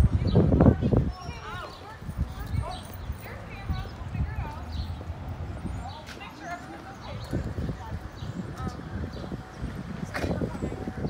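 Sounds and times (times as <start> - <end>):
distant bystanders talking: 0.0 - 11.0.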